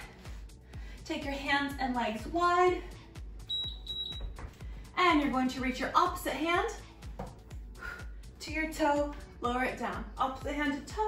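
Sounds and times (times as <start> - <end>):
workout music with steady beat: 0.0 - 11.0
timer high-pitched beeps: 3.5 - 4.3.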